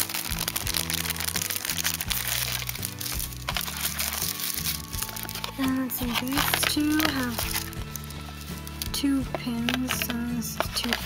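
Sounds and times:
background music chords: 0.0s - 11.0s
plastic sleeve crinkling: 0.0s - 11.0s.

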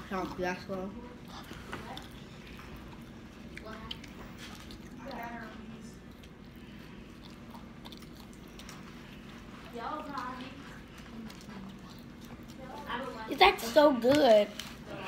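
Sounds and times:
close-up chewing food: 0.0s - 15.0s.

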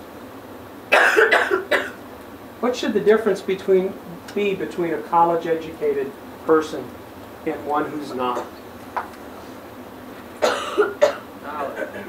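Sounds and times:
man coughing: 0.9s - 2.0s, 8.3s - 8.6s, 10.4s - 12.0s.

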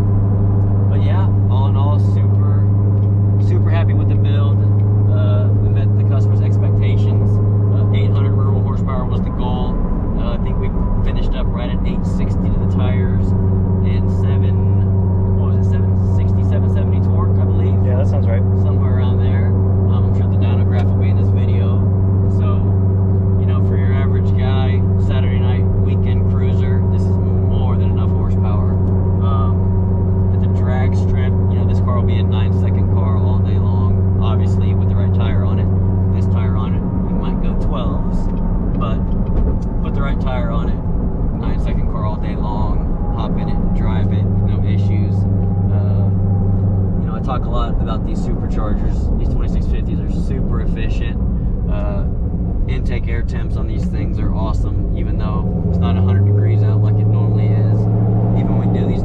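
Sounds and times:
car engine drone from cabin: 0.0s - 59.0s
road noise: 0.0s - 59.0s.

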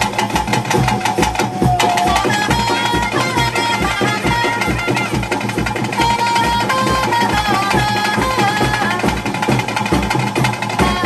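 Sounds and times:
fast steady drum beat: 0.0s - 11.0s.

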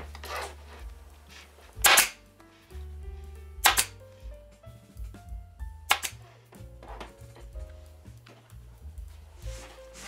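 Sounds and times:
pneumatic stapler firing: 1.8s - 2.2s, 3.6s - 3.9s, 5.9s - 6.2s.

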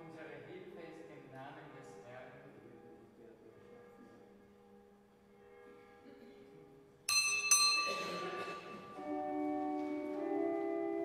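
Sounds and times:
bell ringing: 7.1s - 9.4s.

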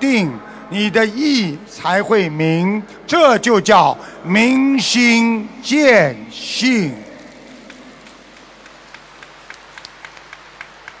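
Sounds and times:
crowd hum: 3.8s - 11.0s
audience clapping: 6.8s - 11.0s.

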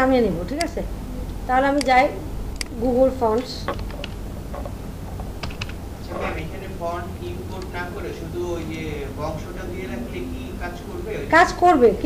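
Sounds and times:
keyboard keystrokes: 3.4s - 5.8s.

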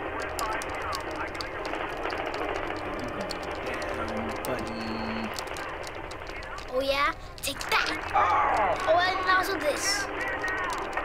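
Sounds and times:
controller buttons clicking: 0.0s - 11.0s
fighting video game sounds: 0.0s - 11.0s.

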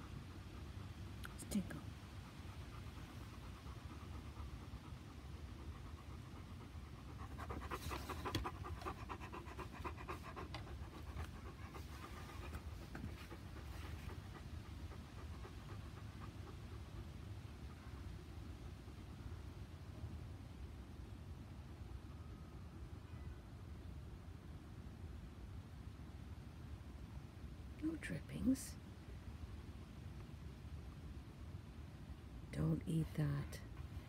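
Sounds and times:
dog panting: 0.0s - 19.1s.

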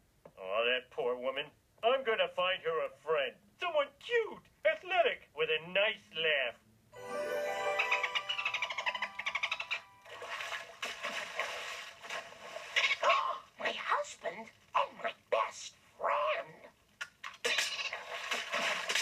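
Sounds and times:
cartoon dolphin squeaking: 7.9s - 10.1s.

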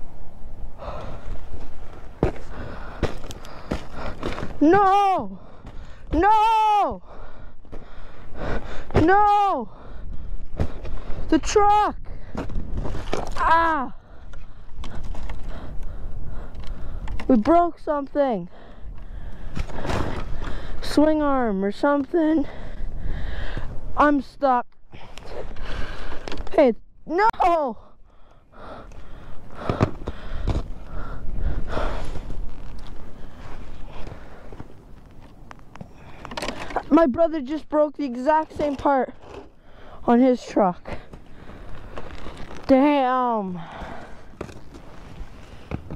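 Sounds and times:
breathing close to microphone: 0.8s - 1.6s, 2.4s - 4.5s, 7.0s - 9.0s, 14.0s - 17.2s, 18.5s - 20.8s, 22.4s - 23.9s, 24.9s - 26.4s, 27.8s - 34.8s, 39.4s - 40.1s, 40.8s - 42.6s, 43.5s - 45.9s
winter clothing rustling: 30.2s - 37.0s, 38.1s - 45.9s
crunching icy snow: 40.3s - 45.7s.

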